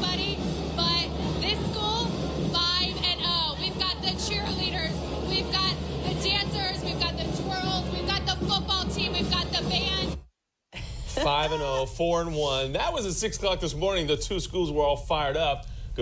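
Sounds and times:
music: 0:00.0 - 0:10.3.

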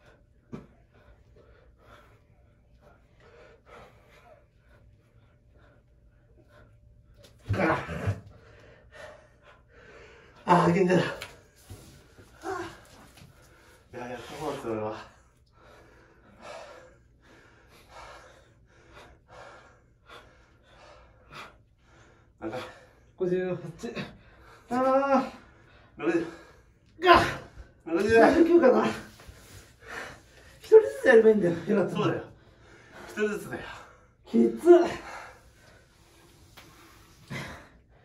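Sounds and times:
men breathing hard: 0:00.0 - 0:10.6, 0:11.2 - 0:23.2, 0:28.7 - 0:30.8, 0:31.4 - 0:38.0.

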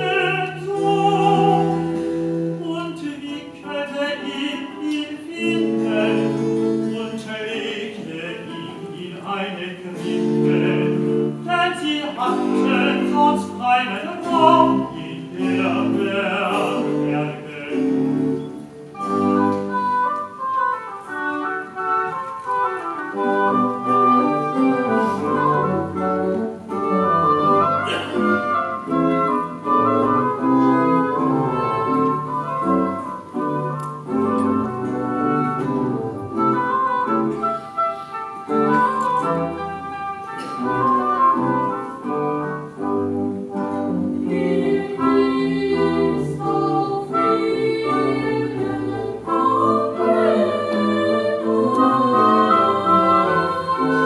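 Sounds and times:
lute: 0:00.0 - 0:54.0
woodwinds: 0:00.0 - 0:54.0.

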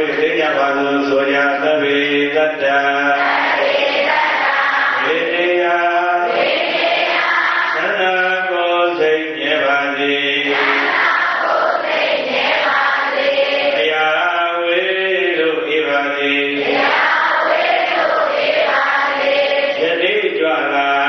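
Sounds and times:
monk chanting into microphone: 0:00.0 - 0:03.4, 0:05.0 - 0:06.4, 0:07.8 - 0:10.8, 0:13.8 - 0:16.7, 0:19.8 - 0:21.0.

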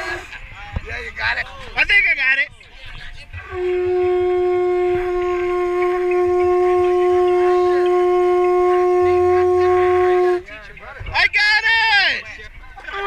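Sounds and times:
conch shell horn note: 0:03.5 - 0:10.5.

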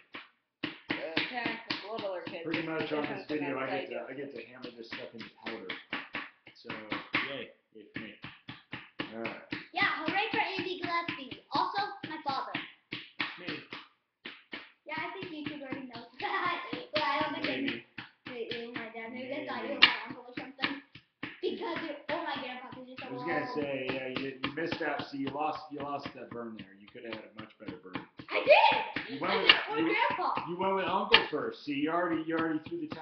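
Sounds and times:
voices talking: 0:01.0 - 0:05.7, 0:09.1 - 0:12.6, 0:14.9 - 0:20.8, 0:21.4 - 0:33.0.

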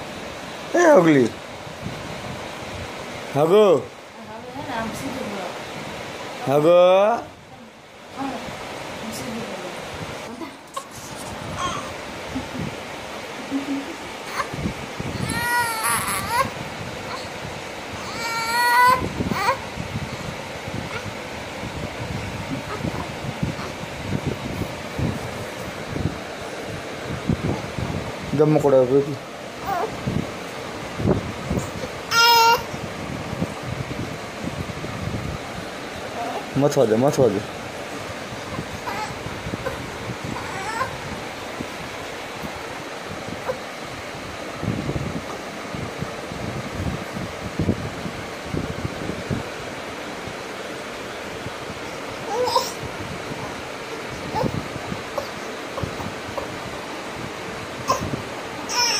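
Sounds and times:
rushing noise with low rumbling: 0:00.0 - 0:06.6, 0:07.2 - 0:58.9
baby whimpering cries: 0:10.7 - 0:12.0, 0:14.2 - 0:17.4, 0:18.0 - 0:19.7, 0:20.9 - 0:21.1, 0:22.6 - 0:23.8, 0:29.6 - 0:30.0, 0:31.6 - 0:32.8, 0:38.4 - 0:41.0, 0:52.2 - 0:52.8, 0:53.4 - 0:56.5, 0:57.8 - 0:58.9.

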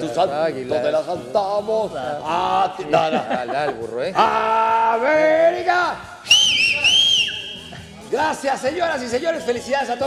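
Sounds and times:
lower sliding whistle note: 0:06.2 - 0:07.7
loud high whistle: 0:06.2 - 0:07.8.

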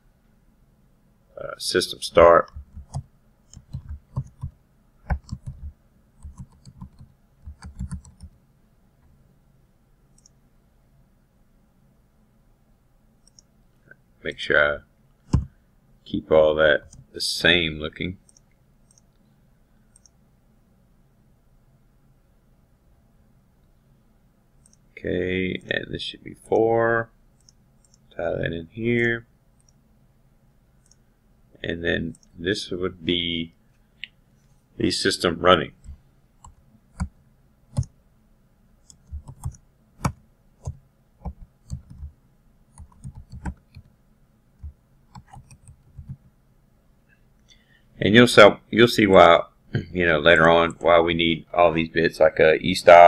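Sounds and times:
computer keyboard typing: 0:02.5 - 0:08.4, 0:38.9 - 0:42.1, 0:42.8 - 0:43.9, 0:44.6 - 0:46.2
faint computer mouse clicks: 0:10.1 - 0:10.4, 0:13.2 - 0:13.5, 0:18.2 - 0:19.3, 0:19.9 - 0:20.2, 0:24.6 - 0:24.8, 0:27.4 - 0:28.1, 0:29.6 - 0:29.8.

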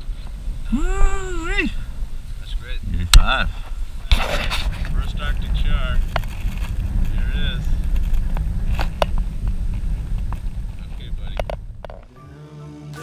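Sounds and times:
wind buffeting microphone: 0:00.0 - 0:12.2
background music: 0:12.1 - 0:13.0.

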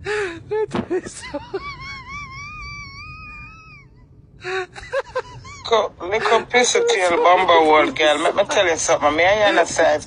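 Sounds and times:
person's high-pitched wailing squeal: 0:06.6 - 0:07.7.

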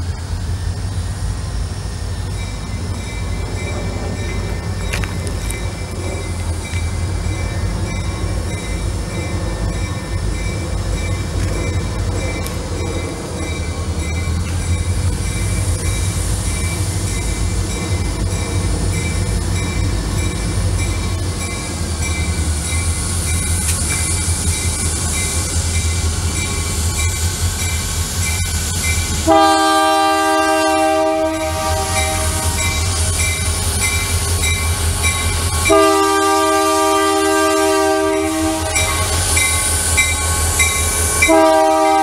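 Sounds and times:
diesel locomotive engines droning: 0:00.0 - 0:42.0.

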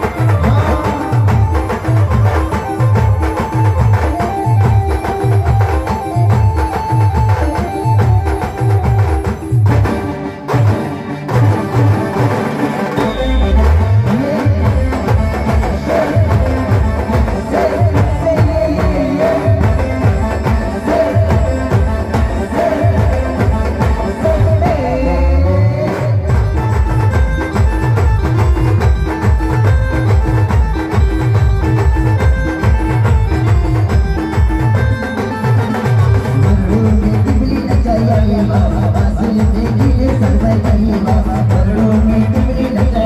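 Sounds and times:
heavy bass drum beat: 0:00.0 - 0:43.0
keyboard melody: 0:00.0 - 0:43.0
live dance music over loudspeakers: 0:00.0 - 0:43.0
percussion: 0:00.0 - 0:43.0.

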